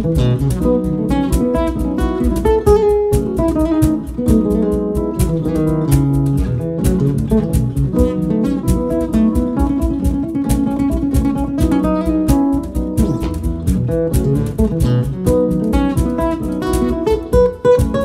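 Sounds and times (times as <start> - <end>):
jazz guitar playing: 0.0 - 18.0.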